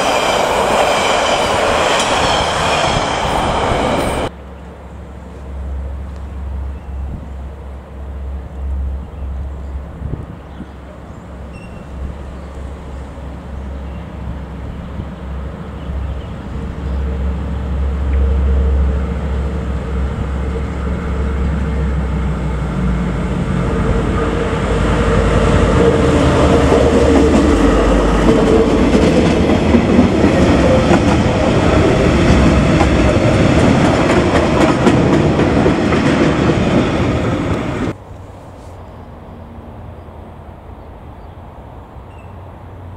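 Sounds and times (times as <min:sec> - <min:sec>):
diesel locomotive engine rumble: 0:00.0 - 0:42.9
train wheels clattering over rail joints: 0:26.7 - 0:37.7.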